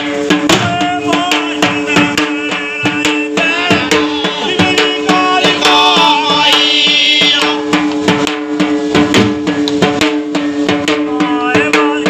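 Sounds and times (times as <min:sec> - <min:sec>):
drums beaten with sticks: 0:00.0 - 0:12.0.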